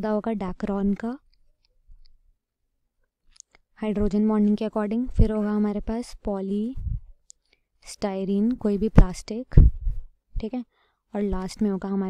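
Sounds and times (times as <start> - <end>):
person speaking: 0.0 - 1.2, 3.3 - 7.1, 7.8 - 10.6, 11.2 - 12.0.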